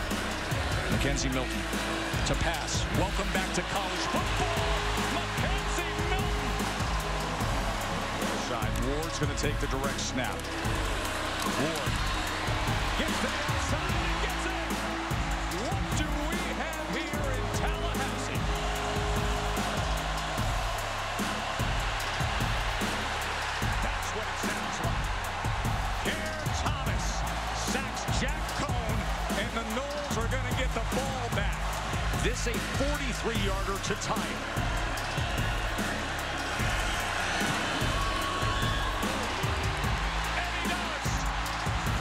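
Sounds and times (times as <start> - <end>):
band music: 0.0 - 23.1, 23.7 - 42.0
drum hits: 0.0 - 42.0
stadium crowd roaring: 0.0 - 42.0.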